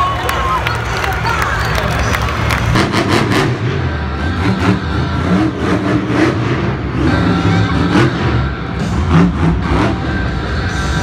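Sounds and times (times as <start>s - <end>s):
monster truck engine revving: 0.7s - 11.0s.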